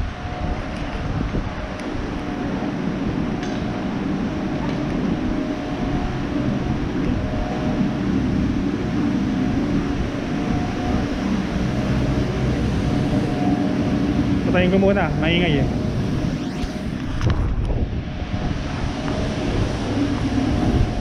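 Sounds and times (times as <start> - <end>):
faint hum: 0.0 - 21.0
low rumble of city noise: 0.0 - 21.0.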